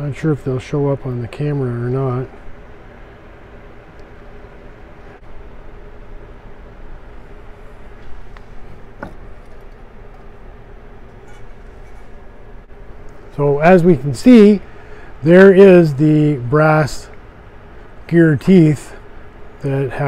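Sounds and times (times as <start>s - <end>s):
steady background hum: 0.0s - 20.0s.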